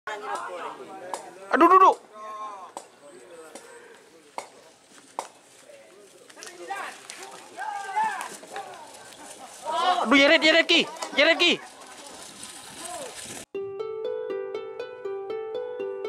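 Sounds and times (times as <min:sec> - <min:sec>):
people calling out: 0:06.4 - 0:13.2.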